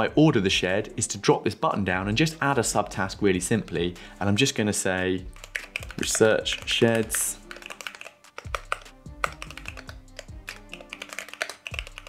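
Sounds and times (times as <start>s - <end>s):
background music with held tones: 0.0s - 12.0s
keyboard typing: 5.2s - 12.0s.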